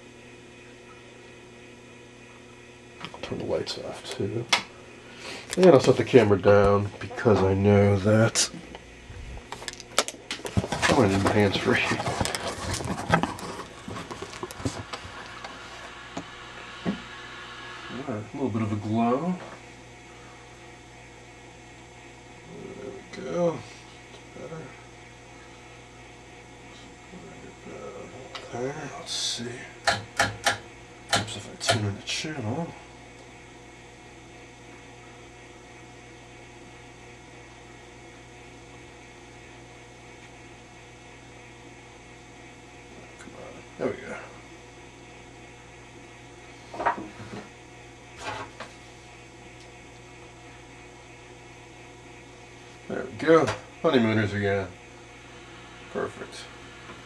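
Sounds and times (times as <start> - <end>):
television mains hum: 0.0 - 57.0.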